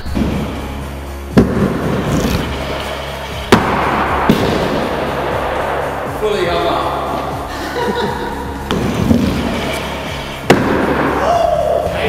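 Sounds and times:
background music with beat: 0:00.0 - 0:12.0
wheels rolling: 0:01.6 - 0:06.2, 0:07.1 - 0:10.5.

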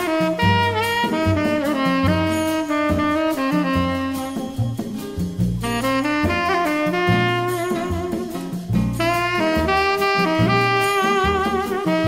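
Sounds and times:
low accompaniment: 0:00.0 - 0:12.0
tenor saxophone melody: 0:00.0 - 0:12.0.

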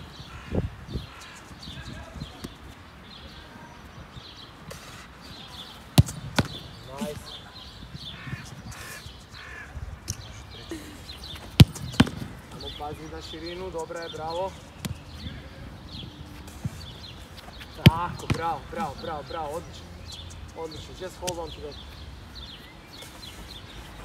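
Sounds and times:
football striking goalkeeper gloves: 0:06.0 - 0:07.2, 0:11.4 - 0:12.7, 0:17.7 - 0:19.2
soft thuds on artificial turf: 0:16.4 - 0:19.1.

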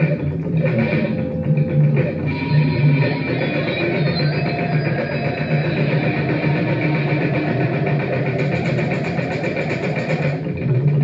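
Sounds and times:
amplified electronic drone: 0:00.0 - 0:11.0
low hum: 0:00.0 - 0:11.0.

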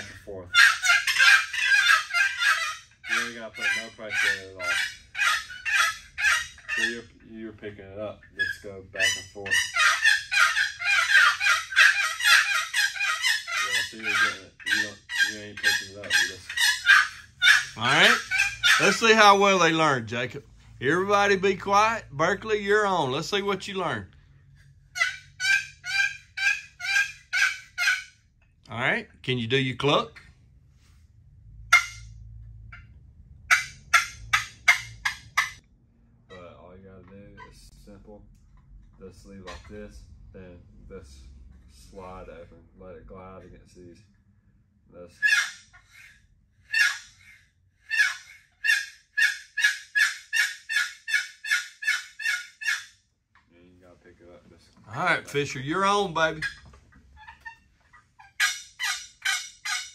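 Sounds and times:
turkey call yelps: 0:00.0 - 0:07.2, 0:08.3 - 0:24.0, 0:25.0 - 0:28.2, 0:31.7 - 0:32.8, 0:33.5 - 0:35.6, 0:45.2 - 0:52.9, 0:54.9 - 0:59.9.

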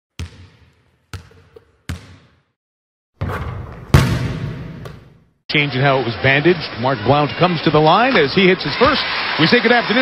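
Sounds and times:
basketball bouncing on hardwood: 0:00.2 - 0:02.4, 0:03.2 - 0:05.1.

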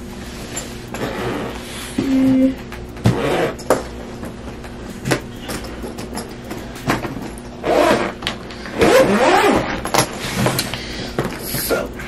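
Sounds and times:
suitcase wheels whirring: 0:00.1 - 0:10.6.

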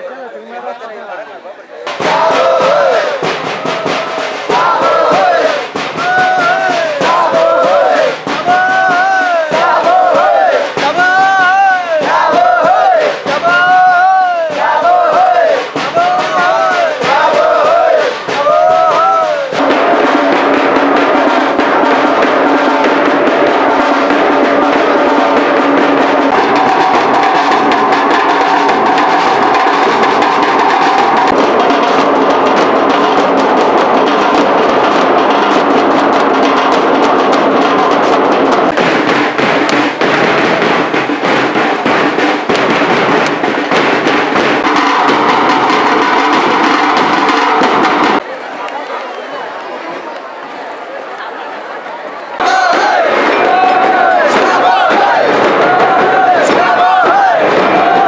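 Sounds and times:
crowd sound: 0:00.0 - 0:58.0
procession drums beating fast: 0:01.8 - 0:48.2, 0:52.4 - 0:58.0.

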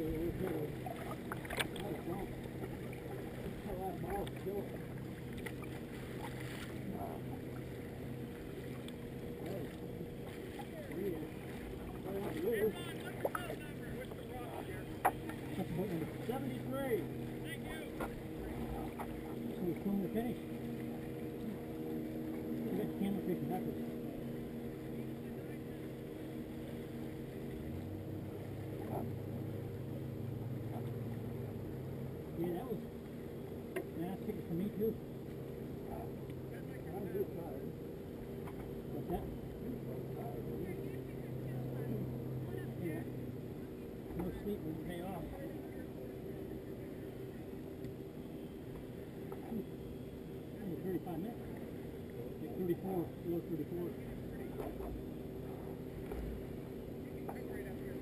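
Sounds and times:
motorboat engine humming: 0:00.0 - 0:58.0
water lapping at hull: 0:00.0 - 0:58.0.

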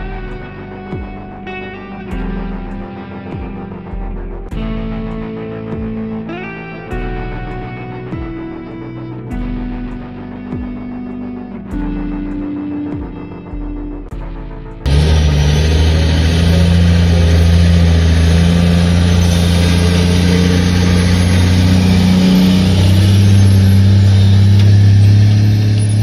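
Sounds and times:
dump truck diesel engine: 0:14.3 - 0:26.0.

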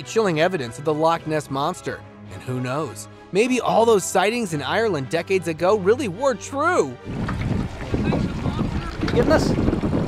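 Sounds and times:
wind buffeting microphone: 0:07.0 - 0:10.0.

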